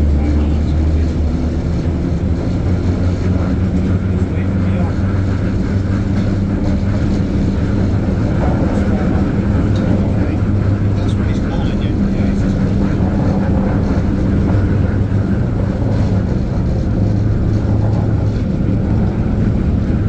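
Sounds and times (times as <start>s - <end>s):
train rumbling on track: 0.0s - 20.0s.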